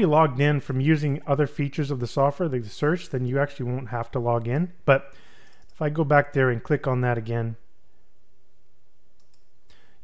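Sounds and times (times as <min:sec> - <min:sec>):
low electrical hum: 0:00.0 - 0:10.0
faint computer mouse clicks: 0:09.2 - 0:09.8.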